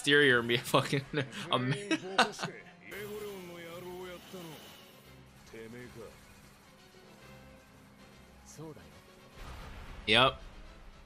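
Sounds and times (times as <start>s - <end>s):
low background music drone: 0.0s - 11.0s
man speaking: 1.4s - 4.8s.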